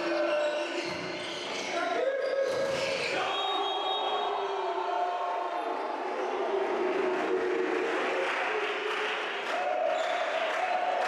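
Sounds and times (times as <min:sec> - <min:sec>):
echoing crowd voices in sports hall: 0:00.0 - 0:11.0.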